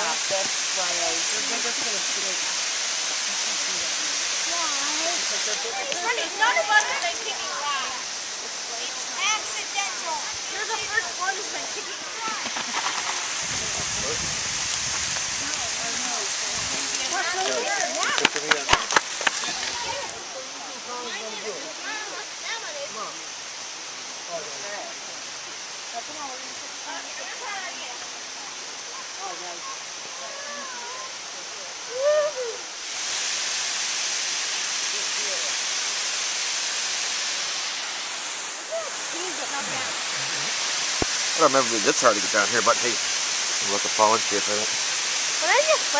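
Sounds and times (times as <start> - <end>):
waterfall rushing: 0.0 - 45.9
wind rumble on microphone: 13.3 - 15.8
faint children's voices: 19.3 - 23.2, 26.8 - 32.7.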